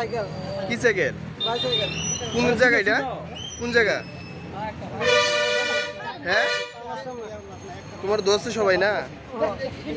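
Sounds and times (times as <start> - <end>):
vehicle horn: 5.0 - 6.9.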